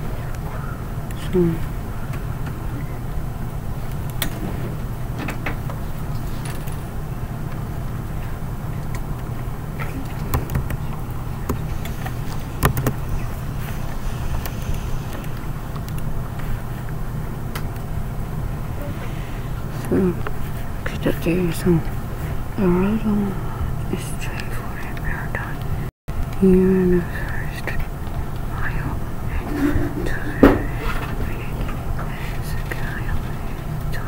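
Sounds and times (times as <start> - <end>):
low room hum: 0.0 - 34.0
faint clicks and knocks: 8.7 - 13.3.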